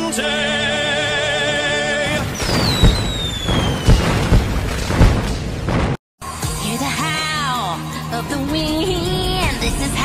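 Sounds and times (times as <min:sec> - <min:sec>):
cartoon booms and pops: 0:02.1 - 0:06.0.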